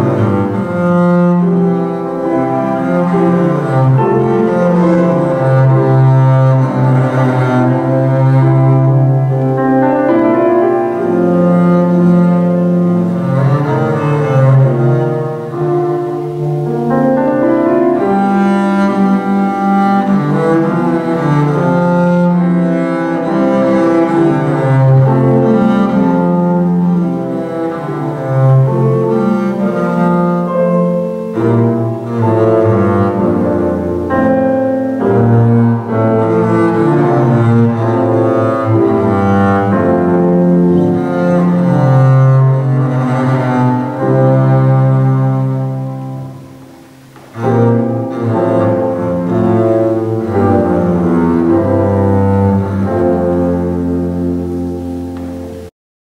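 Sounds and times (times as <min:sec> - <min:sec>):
bowed double bass melody: 0:00.0 - 0:55.7.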